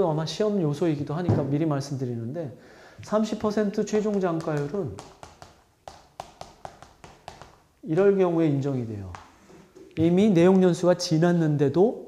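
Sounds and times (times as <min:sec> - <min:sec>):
chalk tapping on chalkboard: 0:03.4 - 0:07.7, 0:09.0 - 0:09.4.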